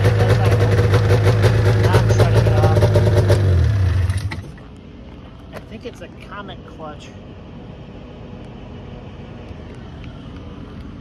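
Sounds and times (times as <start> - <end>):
two-stroke engine idling: 0.0 - 4.6.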